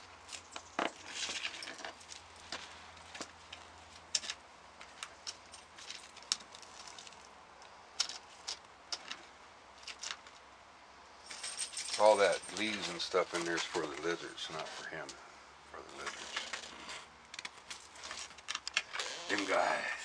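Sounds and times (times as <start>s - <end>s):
tortoise crawling over dry debris: 0.1s - 10.5s, 12.0s - 15.2s, 15.8s - 19.9s.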